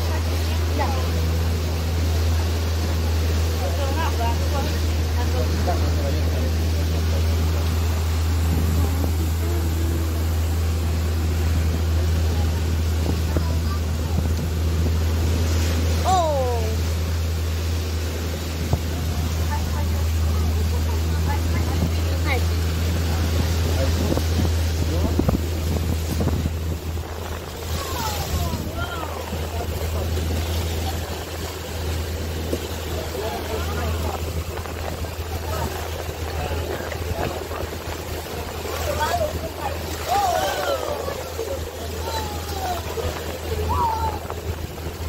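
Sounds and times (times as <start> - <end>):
boat engine droning: 0.0 - 45.0
wake splashing along hull: 0.0 - 45.0
wind buffeting microphone: 4.5 - 16.1, 17.0 - 45.0.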